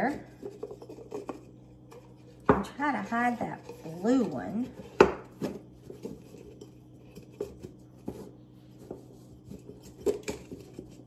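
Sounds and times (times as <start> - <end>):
eggs tapping and rubbing: 0.0 - 11.0.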